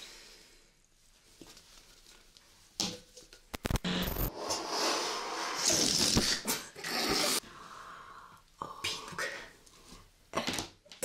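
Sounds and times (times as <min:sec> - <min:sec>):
air rushing out of a balloon: 0:03.9 - 0:07.4.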